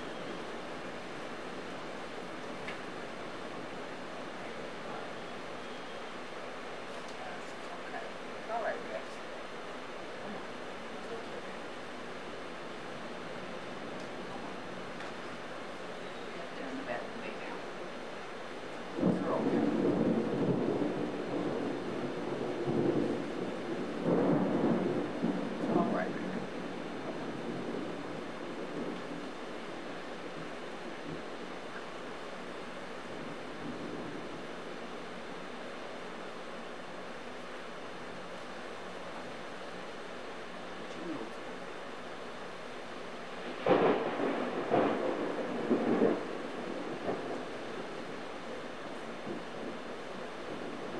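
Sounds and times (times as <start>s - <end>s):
steady rain: 0.0s - 50.9s
thunder rumbling: 10.1s - 37.4s, 42.9s - 50.9s
loud thunder clap rumbling: 19.0s - 29.3s, 43.4s - 48.1s.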